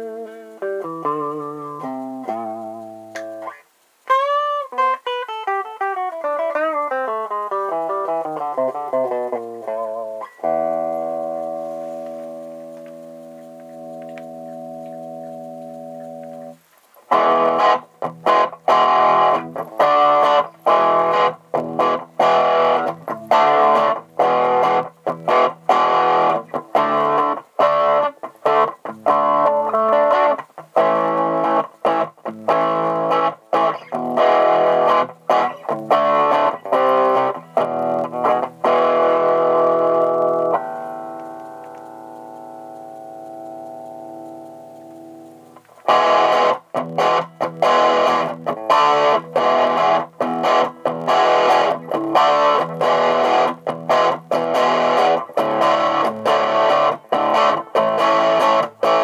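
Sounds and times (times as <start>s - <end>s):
electric guitar chords: 0.0s - 59.0s.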